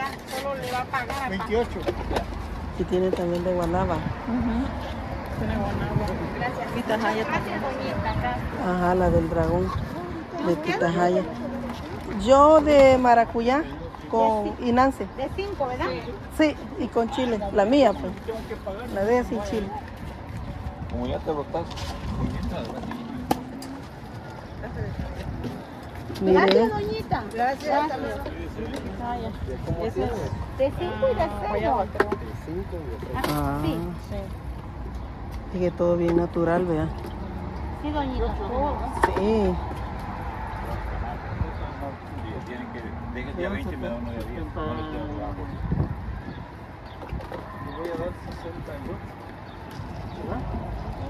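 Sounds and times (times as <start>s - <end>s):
faint voices talking: 0.0s - 51.0s
outdoor street noise: 0.0s - 51.0s.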